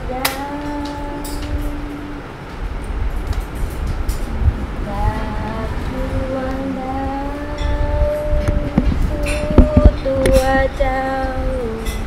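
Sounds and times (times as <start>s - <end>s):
woman singing long note: 0.0s - 2.3s, 4.8s - 12.0s.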